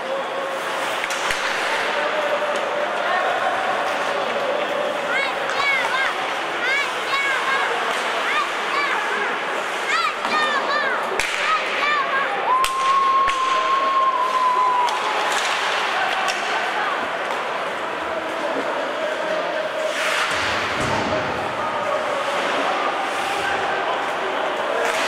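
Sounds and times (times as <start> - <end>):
skates scraping ice: 0.0 - 25.0
spectators' voices: 0.0 - 25.0
hockey sticks hitting puck: 0.5 - 25.0.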